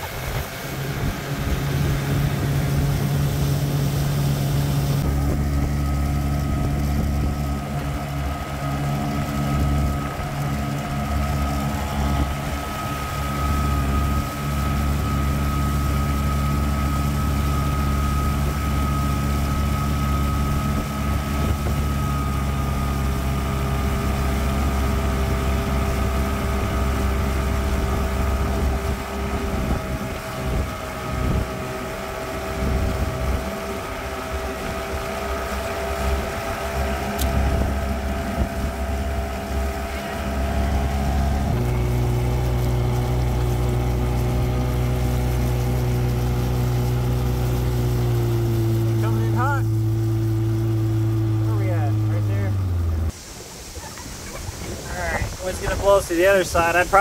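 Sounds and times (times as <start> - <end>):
outboard motor running: 0.0 - 57.0
wind buffeting microphone: 0.0 - 57.0.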